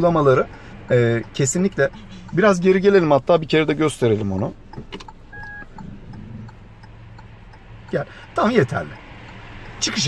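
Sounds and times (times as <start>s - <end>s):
light ticking: 0.0s - 10.0s
low engine hum: 0.0s - 10.0s.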